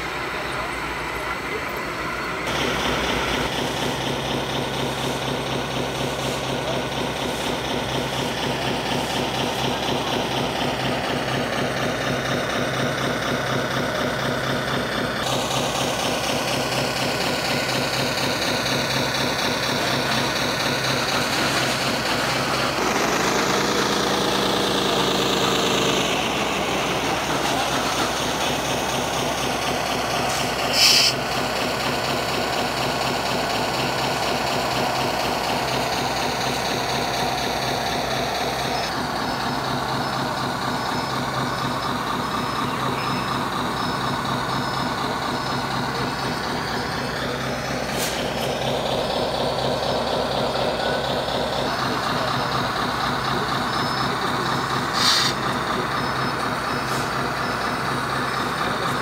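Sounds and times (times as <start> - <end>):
toy truck engine idling: 0.0 - 59.0.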